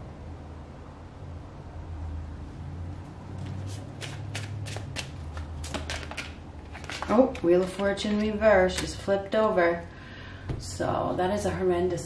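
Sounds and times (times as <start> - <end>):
cards being shuffled: 3.4 - 9.0.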